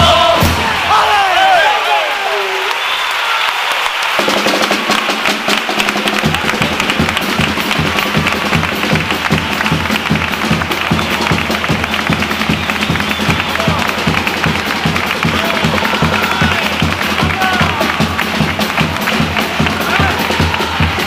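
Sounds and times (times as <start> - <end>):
audience applause: 0.6 - 21.0
bass drum beat: 4.2 - 21.0.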